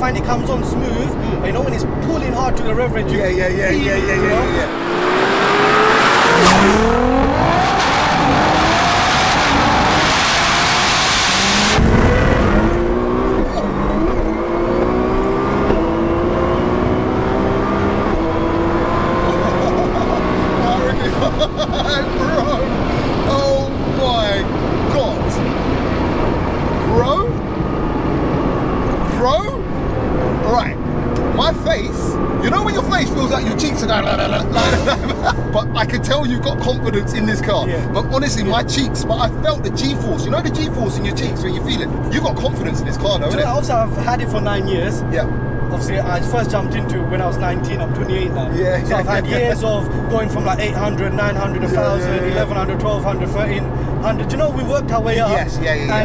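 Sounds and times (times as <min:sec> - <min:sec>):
car engine accelerating hard: 0:01.0 - 0:56.0.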